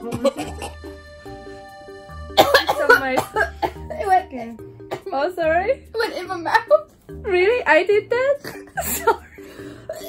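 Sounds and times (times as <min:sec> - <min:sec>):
woman coughing and spluttering: 0:00.0 - 0:00.8, 0:02.4 - 0:04.0, 0:08.4 - 0:09.2
soft background music: 0:00.0 - 0:10.0.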